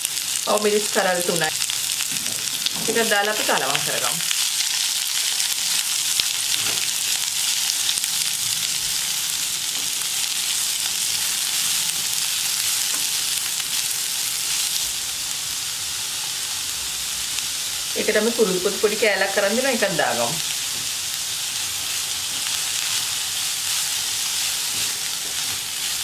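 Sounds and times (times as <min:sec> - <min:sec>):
onions sizzling in hot oil: 0:00.0 - 0:26.0.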